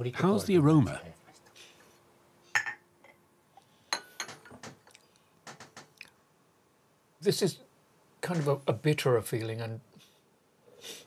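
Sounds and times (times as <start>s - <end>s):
teacup clinking on saucer: 2.6s - 2.8s.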